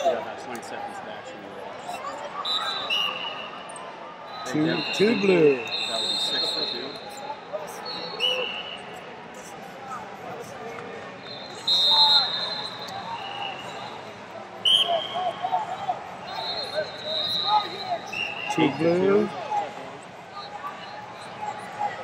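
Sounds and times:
murmur of arena noise: 0:00.0 - 0:22.0
referee whistle blasts: 0:02.4 - 0:03.6, 0:04.2 - 0:07.2, 0:07.8 - 0:08.9, 0:11.2 - 0:19.3.

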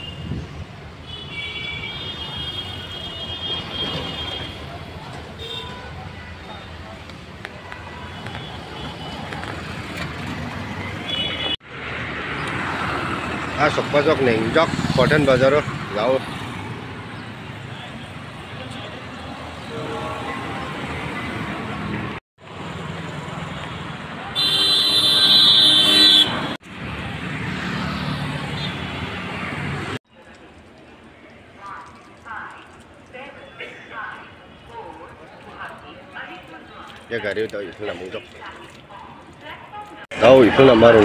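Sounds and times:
outdoor street traffic: 0:00.0 - 0:41.0
passing cars and motorbikes: 0:03.7 - 0:32.6, 0:34.7 - 0:41.0
vehicle horn: 0:11.0 - 0:11.6, 0:24.4 - 0:26.6.

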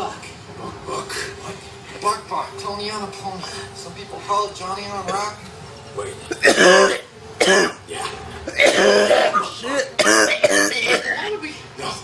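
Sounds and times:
man coughing: 0:06.3 - 0:07.8, 0:08.5 - 0:11.3.

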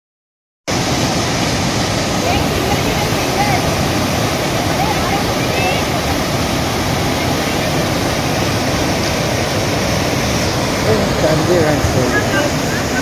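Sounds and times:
river rushing over boulders: 0:00.7 - 0:13.0.

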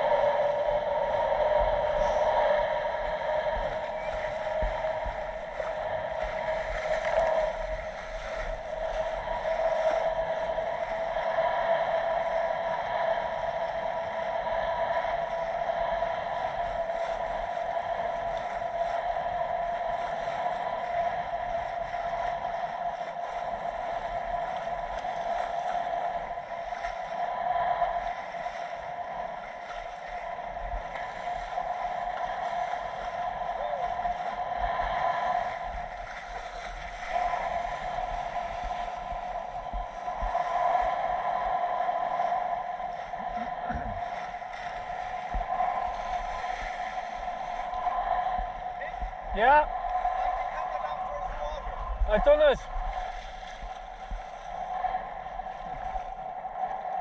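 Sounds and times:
water rushing past hull: 0:00.0 - 0:57.0
boat engine running: 0:43.1 - 0:44.3.

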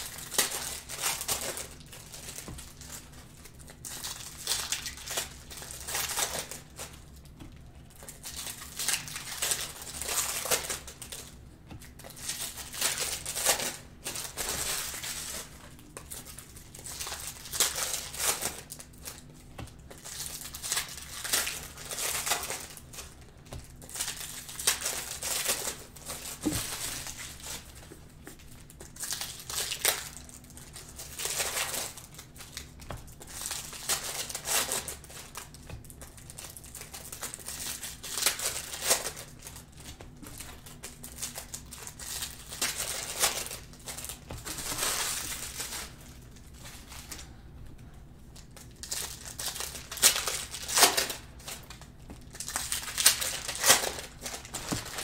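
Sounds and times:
wrappers being torn open: 0:00.0 - 0:27.8, 0:28.4 - 0:47.3, 0:48.4 - 0:55.0
cellophane wrappers crinkling: 0:00.0 - 0:47.4, 0:48.3 - 0:55.0.

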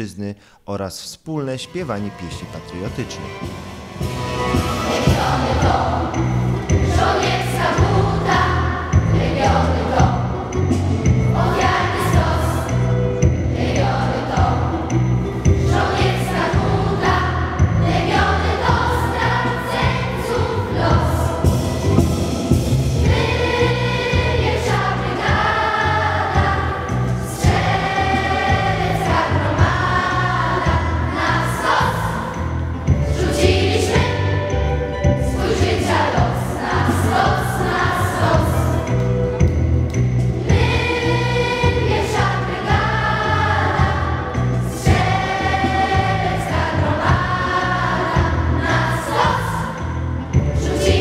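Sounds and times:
youth choir singing: 0:04.0 - 0:39.1, 0:40.4 - 0:51.0.

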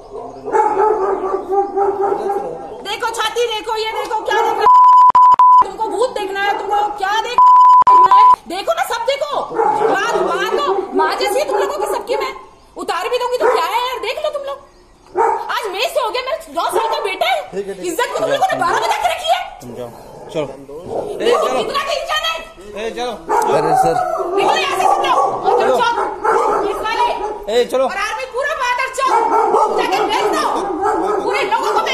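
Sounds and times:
heated argument voices: 0:00.5 - 0:31.9
censor beep: 0:04.6 - 0:05.7, 0:07.4 - 0:08.4
woman shouting angrily: 0:24.4 - 0:26.0, 0:26.6 - 0:27.2, 0:27.9 - 0:30.6, 0:31.2 - 0:31.9.

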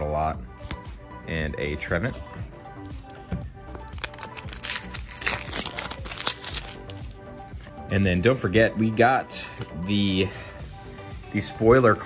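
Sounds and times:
background music: 0:00.0 - 0:12.0
foil wrapper crinkling: 0:03.8 - 0:07.2.

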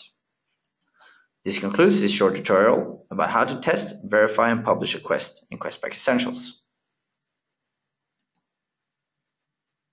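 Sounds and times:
computer mouse clicks: 0:00.6 - 0:01.0, 0:08.2 - 0:08.6.

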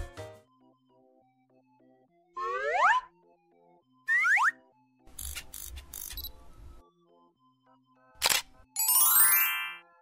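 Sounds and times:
soft children's music: 0:00.0 - 0:10.0
cartoon rising boing: 0:02.4 - 0:03.1.

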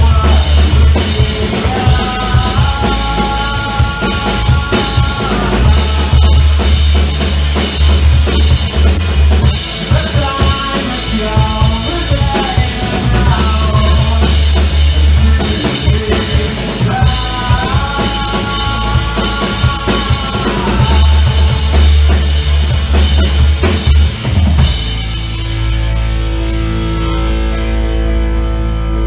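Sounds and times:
drum kit: 0:00.0 - 0:29.0
rock band playing live: 0:00.0 - 0:29.0
sustained lead guitar: 0:00.0 - 0:29.0.

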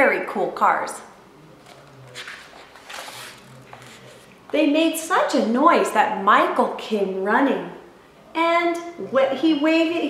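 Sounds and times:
book page turning: 0:01.6 - 0:04.3.

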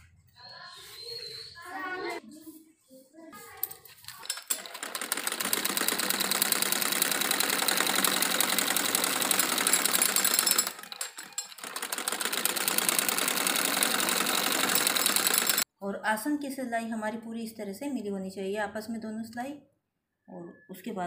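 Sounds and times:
sewing machine stitching: 0:04.1 - 0:15.7.

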